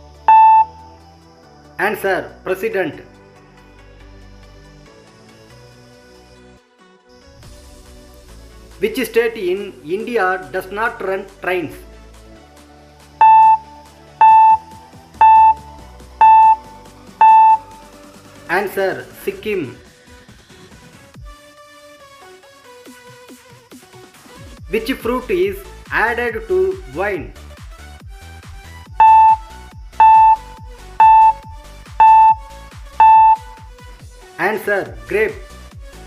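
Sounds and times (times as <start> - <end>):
electronic timer beeps: 0.3 - 0.8, 13.2 - 17.8, 29.0 - 33.7.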